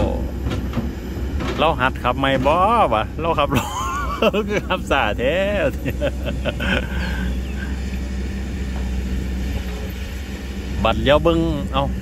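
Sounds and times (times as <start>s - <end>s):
excavator diesel engine running: 0.0s - 12.0s
people laughing: 3.4s - 7.9s.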